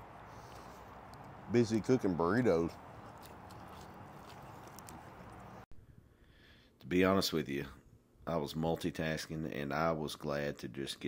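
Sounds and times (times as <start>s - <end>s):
man chewing food: 2.8s - 5.6s.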